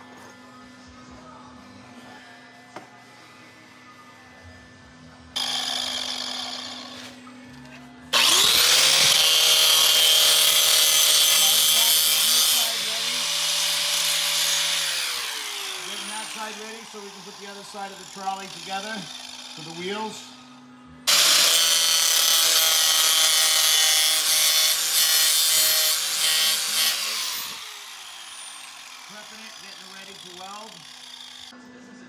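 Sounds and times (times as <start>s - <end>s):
angle grinder grinding steel: 5.4s - 7.3s, 8.1s - 20.4s, 21.1s - 31.5s.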